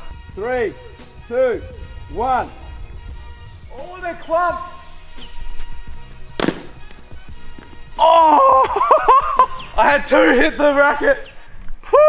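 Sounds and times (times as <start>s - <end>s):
background music: 0.0s - 12.0s
tennis ball striking racket: 6.3s - 7.8s.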